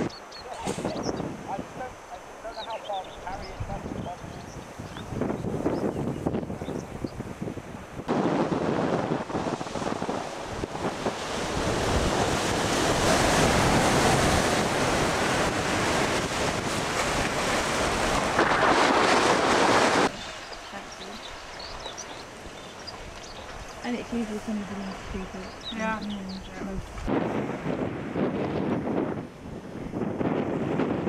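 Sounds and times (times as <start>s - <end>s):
wind rushing over microphone: 0.0s - 31.0s
sea surf: 7.3s - 31.0s.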